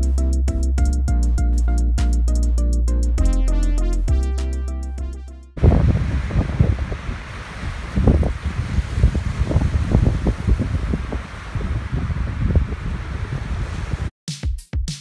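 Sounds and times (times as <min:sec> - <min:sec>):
wind buffeting microphone: 0:05.6 - 0:14.1.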